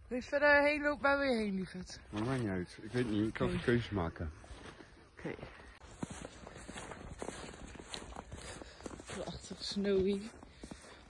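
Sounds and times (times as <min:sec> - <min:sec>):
footsteps crunching in snow: 0:01.2 - 0:11.0.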